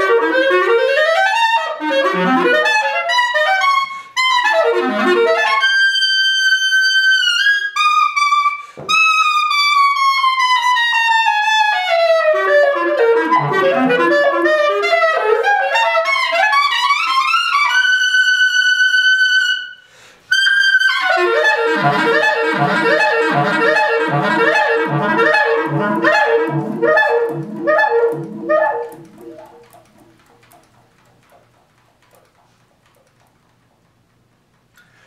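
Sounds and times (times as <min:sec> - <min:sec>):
clarinet playing: 0:00.0 - 0:31.4
clarinet multiphonic with low pulse: 0:00.0 - 0:32.5.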